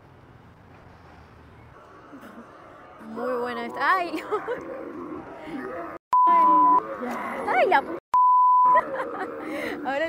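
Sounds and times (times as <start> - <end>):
censor bleep tone: 6.2 - 6.8, 8.1 - 8.8.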